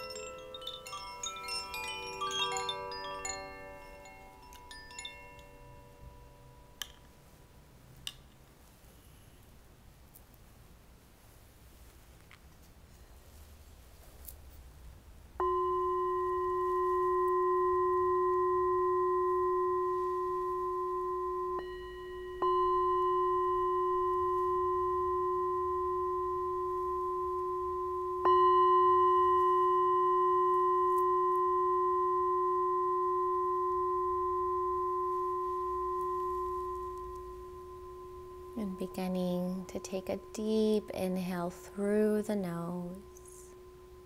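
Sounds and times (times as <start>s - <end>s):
singing bowl struck with mallet: 15.4s - 44.0s.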